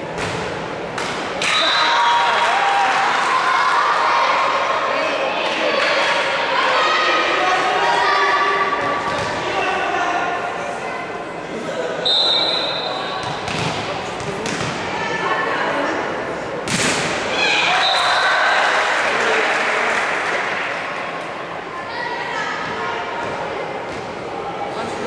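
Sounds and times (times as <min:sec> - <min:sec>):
voices of players and spectators: 0:00.0 - 0:25.0
referee's whistle blast: 0:12.0 - 0:13.0.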